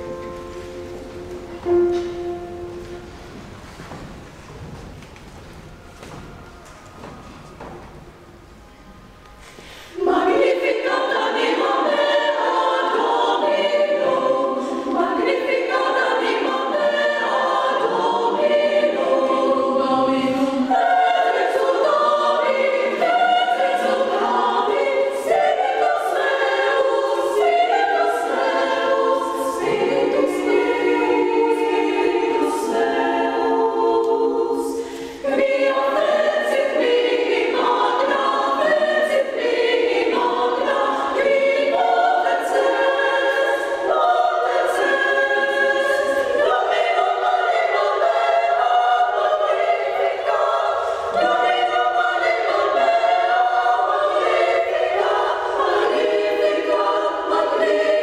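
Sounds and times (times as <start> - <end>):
women's choir singing: 0.0 - 4.0, 5.3 - 58.0.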